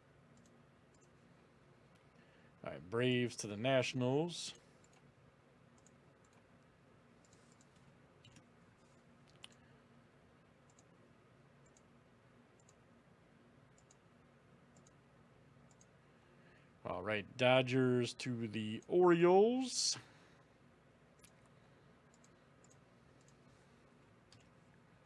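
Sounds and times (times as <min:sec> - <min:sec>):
low steady hum: 0:00.0 - 0:25.0
computer mouse clicks: 0:00.3 - 0:01.2, 0:04.8 - 0:05.1, 0:05.8 - 0:06.5, 0:07.2 - 0:09.7, 0:10.7 - 0:11.0, 0:11.6 - 0:11.9, 0:12.6 - 0:12.8, 0:13.7 - 0:14.0, 0:14.7 - 0:15.0, 0:15.7 - 0:15.9, 0:22.1 - 0:23.5.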